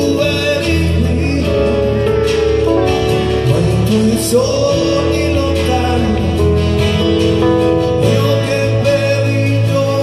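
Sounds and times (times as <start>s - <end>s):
acoustic guitar: 0.0s - 10.0s
keyboard chords: 0.0s - 10.0s.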